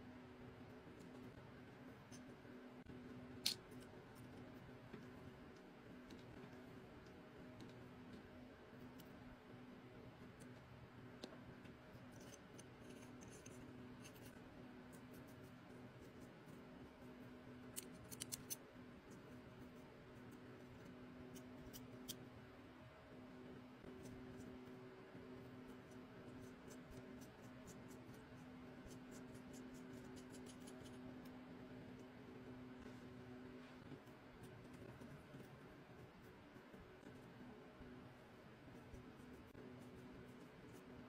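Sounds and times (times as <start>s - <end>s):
faint low hum: 0.0s - 41.0s.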